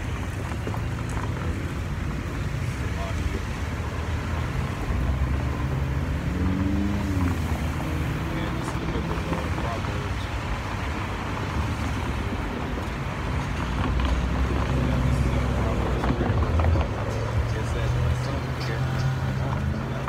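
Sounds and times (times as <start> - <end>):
cars passing: 0.0 - 20.0.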